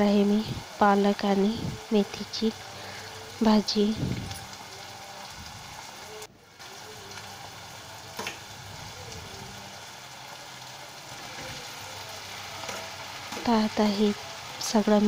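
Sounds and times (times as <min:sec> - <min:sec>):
leaves sizzling in hot oil: 0:00.0 - 0:15.0.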